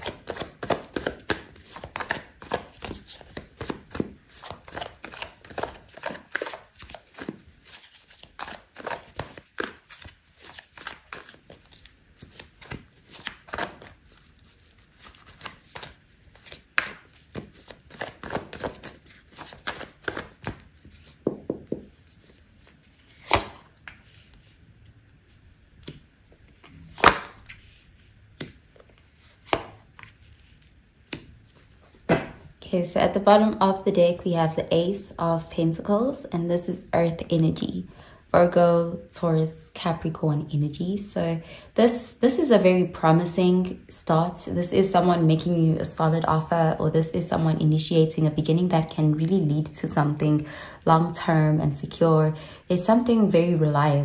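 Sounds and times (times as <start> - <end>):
cards being shuffled: 0.0 - 24.5.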